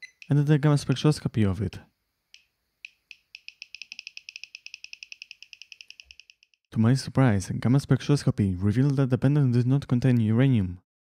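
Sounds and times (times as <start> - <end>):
radiation detector chirping: 0.0 - 1.1, 2.4 - 6.6.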